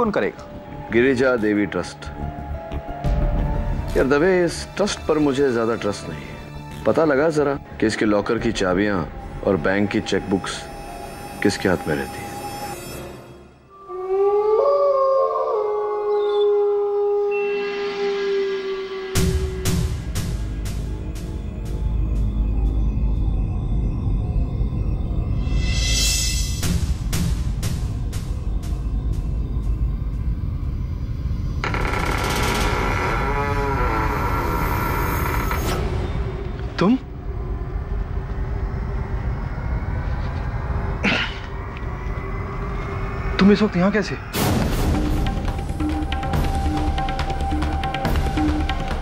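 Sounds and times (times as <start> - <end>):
dog howling: 13.8 - 19.5
low rumbling drone: 15.5 - 49.0.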